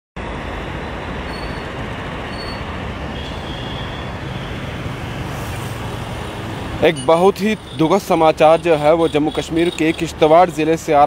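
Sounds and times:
torrent of water rushing: 0.2 - 11.0.

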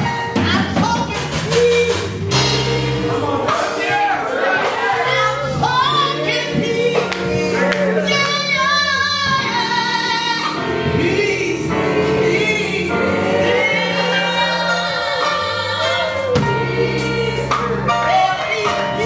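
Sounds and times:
choir backing vocals: 1.4 - 19.0
woman singing into a microphone: 5.2 - 12.7.

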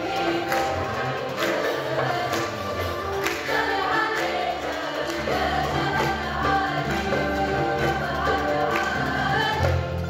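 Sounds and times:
choir singing: 0.0 - 10.0
percussion: 0.0 - 10.0
piano: 0.0 - 10.0.

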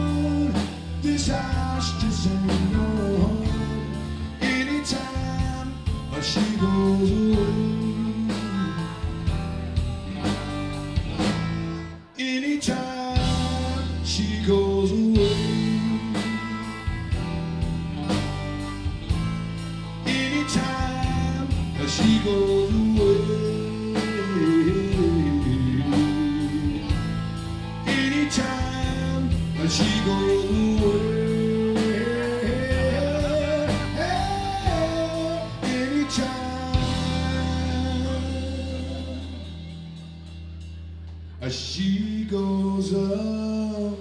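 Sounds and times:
sliding guitar melody: 0.0 - 41.4
blues-rock band playing: 0.0 - 42.6.

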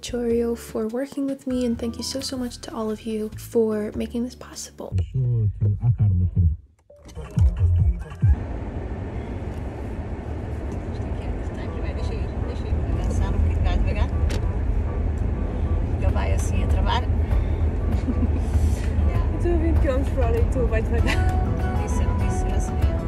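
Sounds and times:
car interior engine and road rumble: 7.2 - 23.0.

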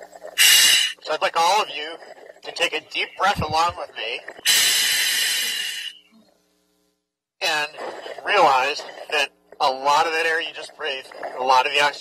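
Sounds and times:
scuba regulator hiss: 0.4 - 1.0, 4.4 - 6.0.

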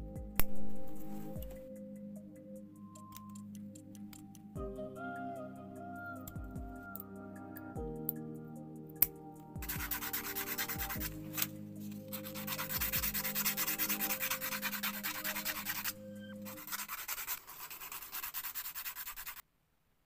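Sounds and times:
plastic rubbed on sandpaper: 9.6 - 11.5, 12.1 - 19.4.

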